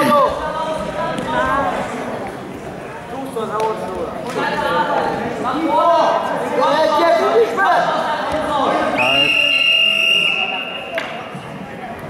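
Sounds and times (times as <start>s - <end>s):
voices in a hall: 0.0s - 12.0s
referee's whistle long blast: 9.0s - 11.0s.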